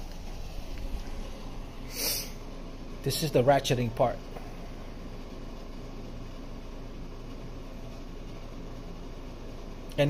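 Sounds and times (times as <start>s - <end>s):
brief hiss: 1.8s - 2.4s.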